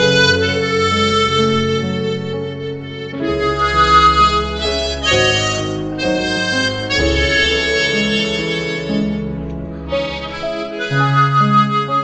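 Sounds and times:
sustained low bass notes: 0:00.0 - 0:10.9
harmonica playing slow melody: 0:00.0 - 0:12.0.

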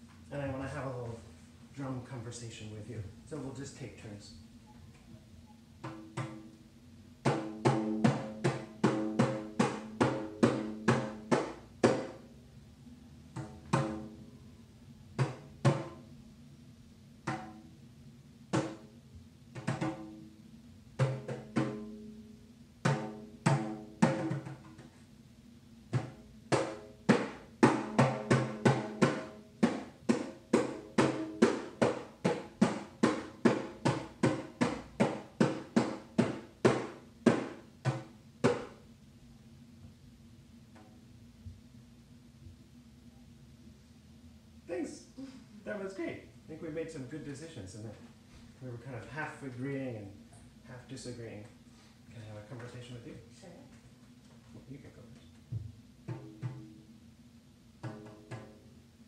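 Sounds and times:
frame drum struck by hand: 0:05.8 - 0:06.5, 0:07.2 - 0:12.2, 0:21.0 - 0:22.0, 0:22.8 - 0:24.9, 0:25.9 - 0:38.8, 0:55.5 - 0:56.8, 0:57.8 - 0:58.7.

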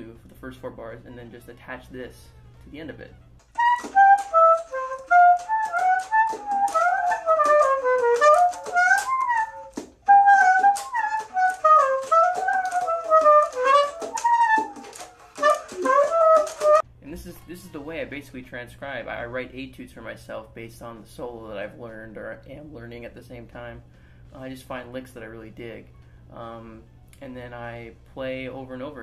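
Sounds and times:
saxophone playing jazz: 0:02.2 - 0:16.9.

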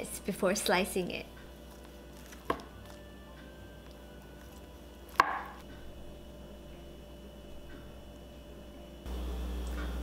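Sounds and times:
cleaver chopping onto cutting board: 0:05.1 - 0:05.6.

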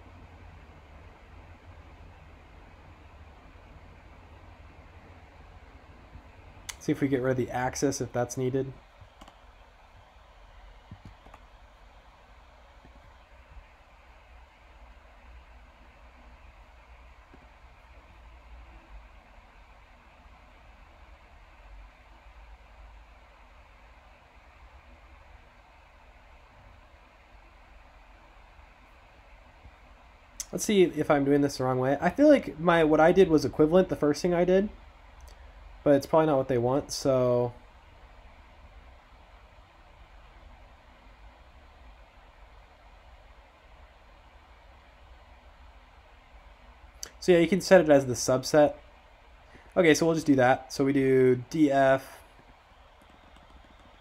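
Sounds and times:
faint hiss: 0:00.0 - 0:54.0
low hum: 0:00.0 - 0:54.0.

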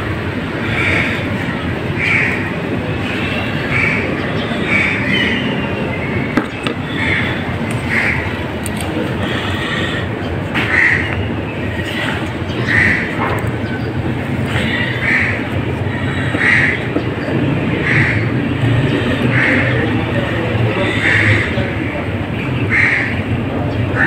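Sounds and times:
steady rumbling: 0:00.0 - 0:24.0.

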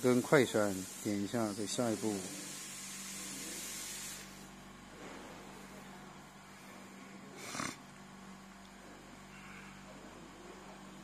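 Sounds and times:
hiss: 0:00.0 - 0:04.5.

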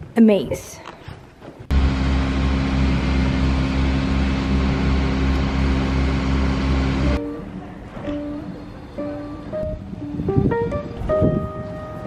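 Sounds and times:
machine humming with hiss: 0:01.7 - 0:07.2.

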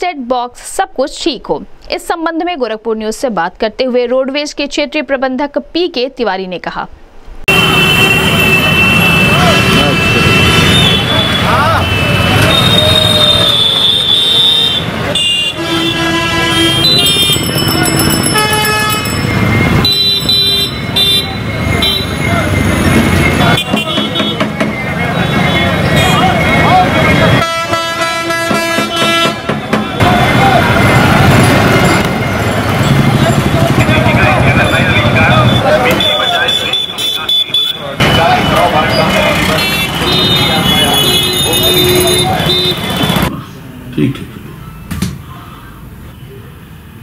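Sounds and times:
running engines: 0:07.5 - 0:37.2, 0:37.8 - 0:44.8
vehicle horns honking: 0:07.5 - 0:43.3
crowd chatter: 0:08.6 - 0:15.4, 0:16.3 - 0:18.5, 0:20.8 - 0:27.5, 0:28.8 - 0:46.7.

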